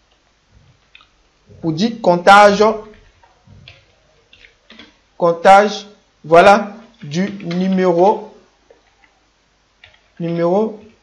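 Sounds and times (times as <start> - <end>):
faint keyboard typing: 2.6 - 5.0, 6.8 - 9.2, 9.8 - 11.0.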